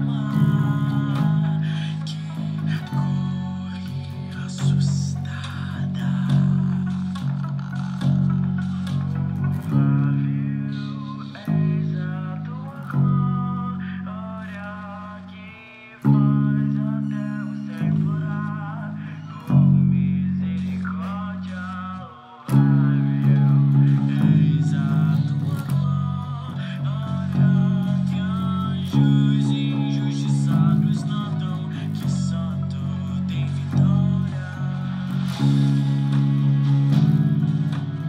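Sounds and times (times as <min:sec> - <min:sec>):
electric bass guitar low notes: 0:00.0 - 0:38.0
recorded song: 0:00.0 - 0:38.0
backing track with drums: 0:33.5 - 0:38.0.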